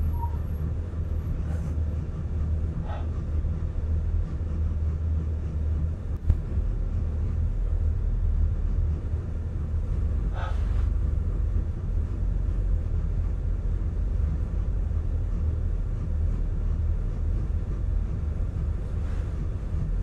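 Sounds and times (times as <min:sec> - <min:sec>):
truck engine and tyre rumble: 0:00.0 - 0:20.0.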